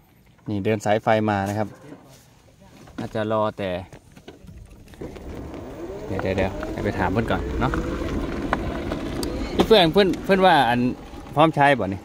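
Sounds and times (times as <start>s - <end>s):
motorcycle engine revving: 4.9s - 12.0s.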